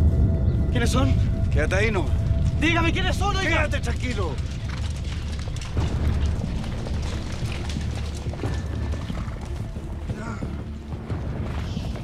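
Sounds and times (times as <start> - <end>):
dramatic background music: 0.0 - 12.0
heavy low rumble: 0.0 - 12.0
horses galloping: 0.8 - 12.0.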